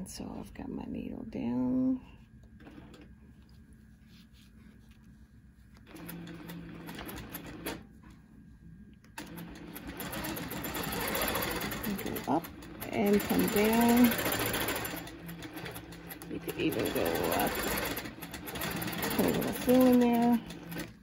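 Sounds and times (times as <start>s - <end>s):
quilting machine stitching: 2.6s - 3.1s, 5.8s - 7.8s, 9.2s - 21.0s.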